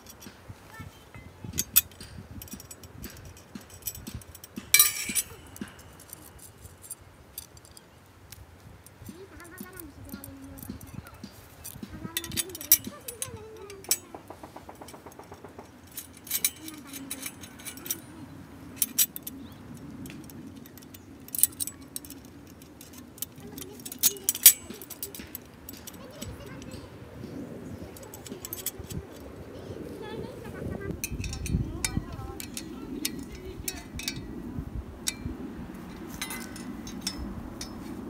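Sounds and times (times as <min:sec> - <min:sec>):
metal parts clinking and clicking: 0:00.0 - 0:29.4, 0:30.8 - 0:34.4, 0:35.0 - 0:38.0
small metallic ticks: 0:00.0 - 0:38.0.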